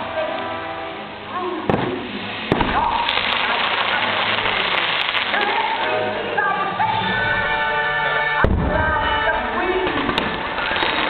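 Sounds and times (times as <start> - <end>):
fireworks crackling: 0.0 - 11.0
fireworks bangs: 1.7 - 6.1, 8.4 - 11.0.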